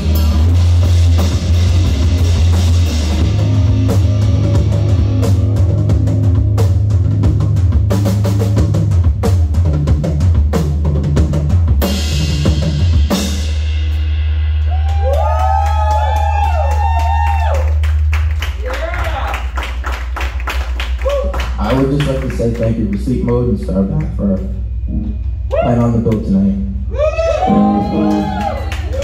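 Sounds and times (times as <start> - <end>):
drumming: 0.0 - 24.9
low bass note: 21.5 - 28.7.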